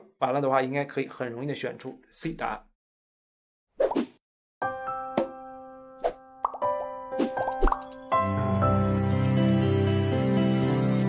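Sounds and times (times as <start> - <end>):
bright popping sound effects: 6.4 - 8.0
music bed: 8.0 - 11.0.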